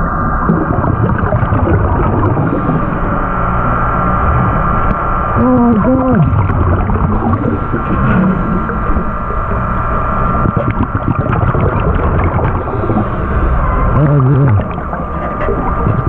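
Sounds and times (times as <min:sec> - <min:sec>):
air bubbles bubbling: 0:00.0 - 0:03.5, 0:04.4 - 0:16.0
underwater low rumble: 0:00.0 - 0:16.0
low muffled groan: 0:12.1 - 0:16.0.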